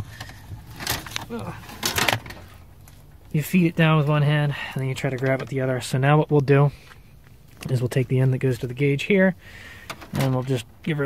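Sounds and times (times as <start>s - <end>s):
wires rustling and scraping: 0.0s - 11.0s
man's voice: 10.2s - 11.0s.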